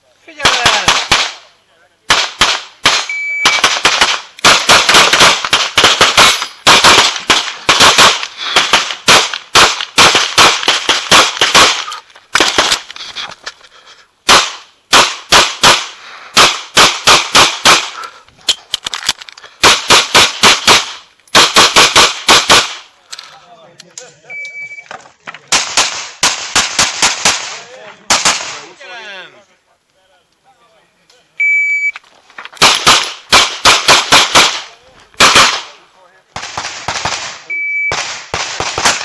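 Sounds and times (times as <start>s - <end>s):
pistol shots: 0.4s - 1.4s, 2.1s - 12.9s, 14.3s - 18.0s, 19.6s - 22.8s, 25.5s - 28.6s, 32.6s - 35.8s, 36.4s - 39.0s
short high beep: 3.1s - 3.6s, 24.3s - 24.9s, 31.4s - 32.0s, 37.5s - 38.0s.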